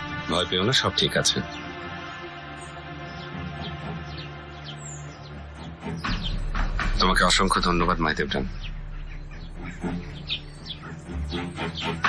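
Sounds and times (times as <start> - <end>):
birds chirping: 0.0 - 12.0
low soundtrack music: 0.0 - 12.0.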